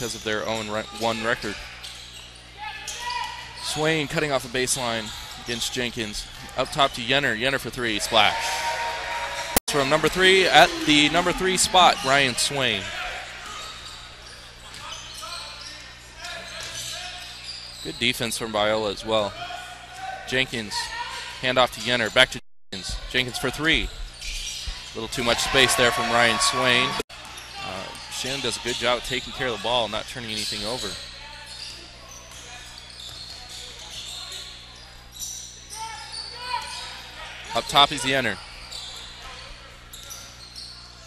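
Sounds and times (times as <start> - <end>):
indistinct voices: 7.9 - 12.9
crowd chatter: 7.9 - 14.0.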